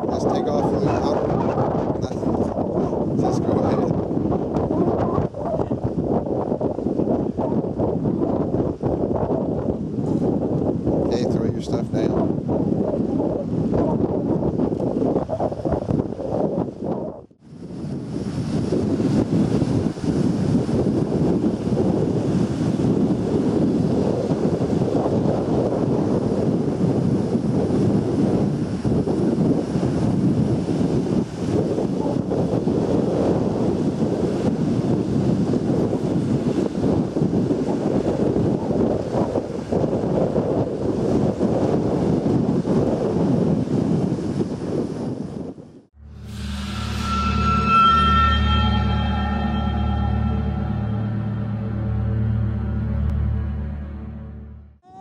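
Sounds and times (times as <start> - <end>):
wind on microphone: 0.0 - 54.2.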